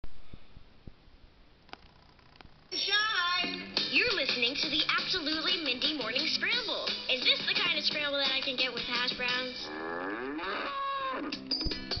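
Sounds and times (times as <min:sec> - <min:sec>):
cow mooing: 0:09.6 - 0:11.4.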